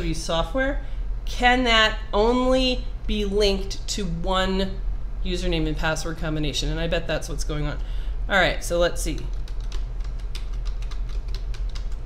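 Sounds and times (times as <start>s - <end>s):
steady low hum: 0.0s - 12.0s
computer keyboard typing: 9.0s - 12.0s.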